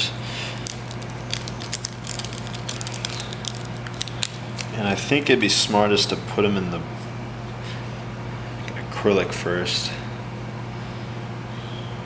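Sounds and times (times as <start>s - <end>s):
steady low hum: 0.0s - 12.0s
plastic bag crinkling: 0.6s - 4.8s.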